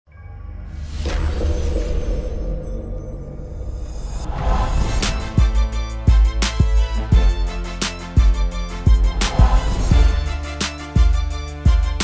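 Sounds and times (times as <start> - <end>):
deep bass intro music: 0.1 - 12.0
sweeping crashing sound effect: 0.7 - 5.9.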